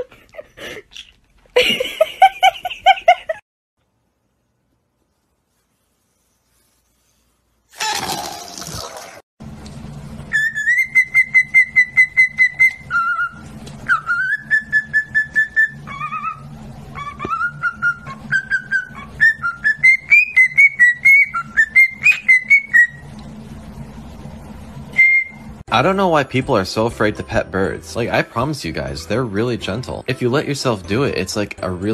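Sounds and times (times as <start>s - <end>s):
low hum: 9.4s - 27.0s
cockatiel whistling: 10.3s - 23.0s, 25.0s - 25.5s.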